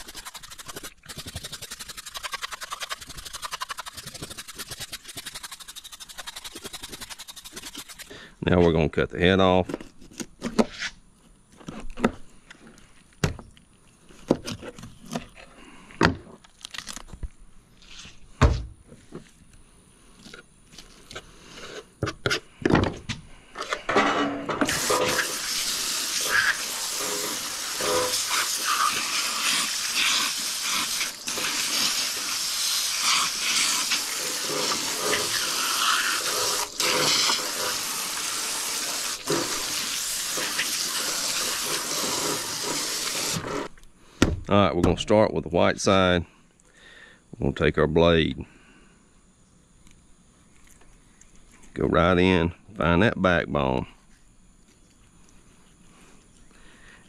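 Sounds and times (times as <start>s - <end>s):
hose nozzle spraying water: 0.0s - 8.2s, 24.6s - 43.7s.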